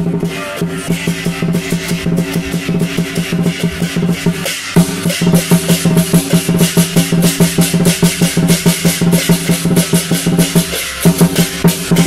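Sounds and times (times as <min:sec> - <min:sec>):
cymbals and gong ringing: 0:00.0 - 0:12.0
large drum beating fast: 0:00.0 - 0:12.0.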